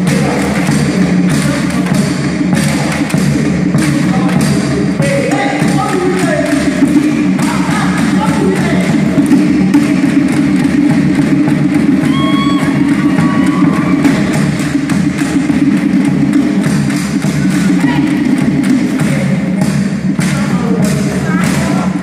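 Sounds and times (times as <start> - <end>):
skin drums struck with sticks: 0.0 - 22.0.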